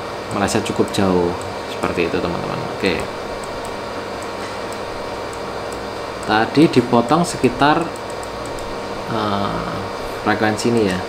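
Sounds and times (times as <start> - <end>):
pink noise hiss from loudspeaker: 0.0 - 4.2, 4.9 - 11.0.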